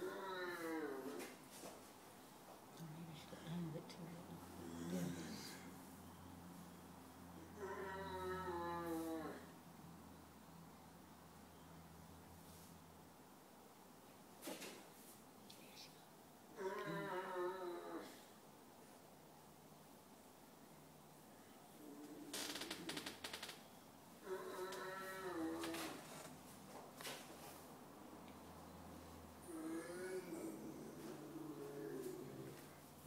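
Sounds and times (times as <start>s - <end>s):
wavering animal call: 7.4s - 9.5s, 16.6s - 18.1s, 24.2s - 26.0s.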